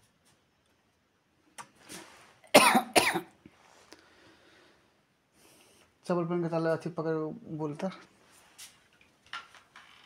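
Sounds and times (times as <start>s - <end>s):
person coughing: 2.5s - 3.3s.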